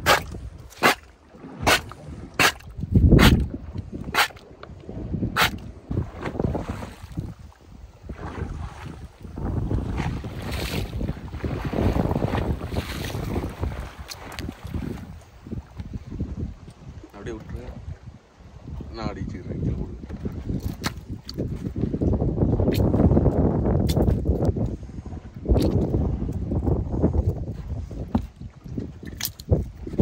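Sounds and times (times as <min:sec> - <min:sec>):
water washing against boat: 0:00.0 - 0:30.0
wind buffeting microphone: 0:00.0 - 0:30.0.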